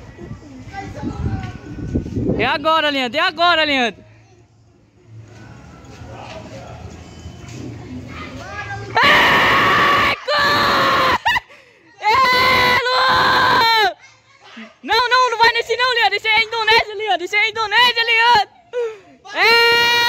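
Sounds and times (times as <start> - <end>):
loud high-pitched yelling: 9.0 - 11.4, 12.0 - 15.1.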